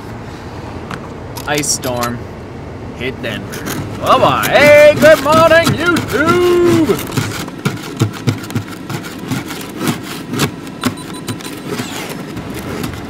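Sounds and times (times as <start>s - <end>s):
car engine idling: 0.0s - 13.0s
sharp ticks and knocks: 4.5s - 13.0s.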